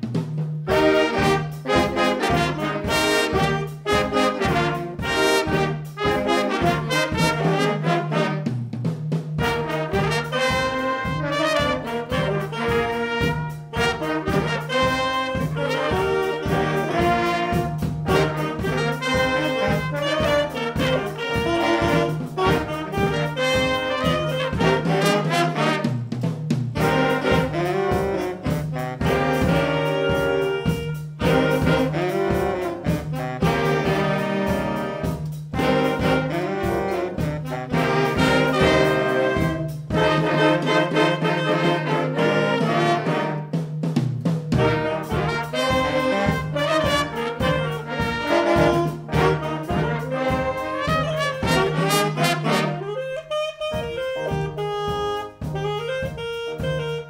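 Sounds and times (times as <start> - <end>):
jazz big band playing: 0.0 - 57.0.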